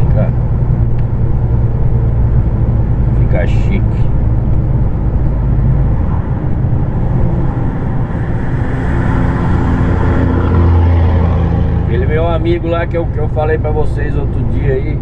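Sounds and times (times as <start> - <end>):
truck engine and road rumble: 0.0 - 15.0
trucks passing by: 0.0 - 15.0.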